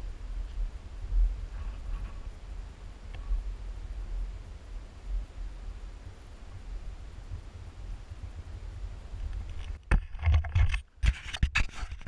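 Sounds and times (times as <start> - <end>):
wind buffeting microphone: 0.0 - 9.9
camera pole clicks and scrapes: 9.3 - 12.0.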